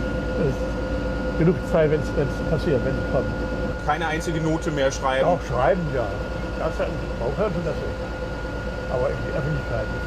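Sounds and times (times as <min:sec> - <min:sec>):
boat engine hum: 0:00.0 - 0:10.0
faint whine: 0:00.0 - 0:10.0
man speaking: 0:01.4 - 0:08.0, 0:08.9 - 0:10.0.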